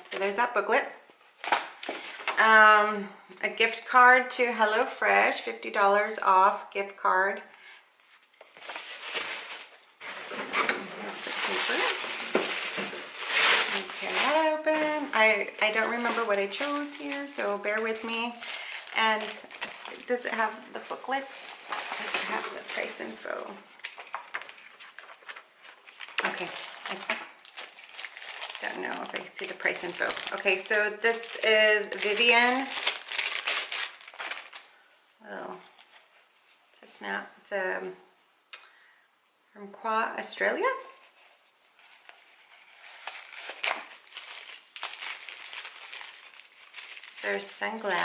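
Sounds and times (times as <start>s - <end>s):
plastic wrapping crinkling: 8.0s - 34.9s, 41.2s - 48.0s
paper rustling and crackling: 8.2s - 34.7s, 41.0s - 48.0s.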